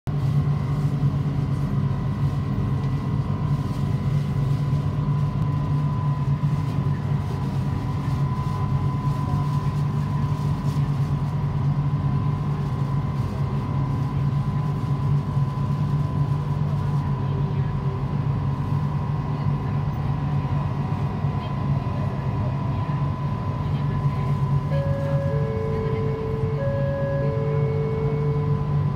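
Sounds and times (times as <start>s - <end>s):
train cabin low drone: 0.1s - 28.9s
faint high whine: 24.1s - 28.9s.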